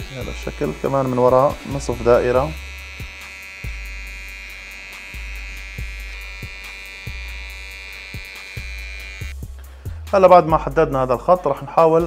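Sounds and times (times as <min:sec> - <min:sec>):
hair trimmer buzzing: 0:00.0 - 0:09.5
background music with low beat: 0:00.0 - 0:12.0.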